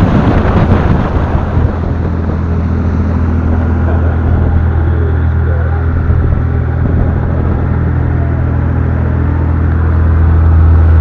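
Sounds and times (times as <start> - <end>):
boat engine droning: 0.0 - 11.0
wind buffeting microphone: 0.0 - 11.0.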